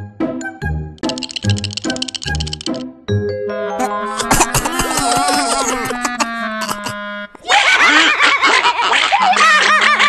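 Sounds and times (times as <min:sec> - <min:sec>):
light cartoon music: 0:00.0 - 0:07.4.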